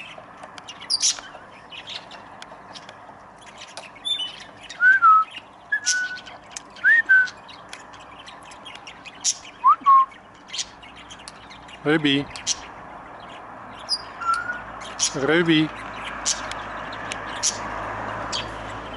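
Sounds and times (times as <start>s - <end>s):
parrots whistling: 4.0s - 7.4s, 9.2s - 10.8s, 13.8s - 15.2s.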